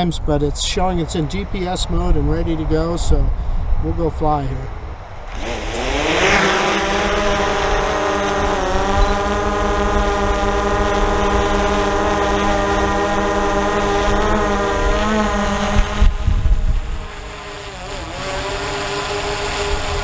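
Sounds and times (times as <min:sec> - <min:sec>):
drone propellers whining: 0:05.3 - 0:20.0.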